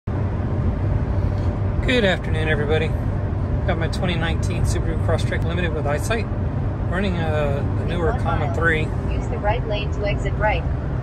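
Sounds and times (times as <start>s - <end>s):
road rumble inside car: 0.1s - 11.0s
man speaking: 1.8s - 2.9s, 3.7s - 6.3s, 6.9s - 9.0s.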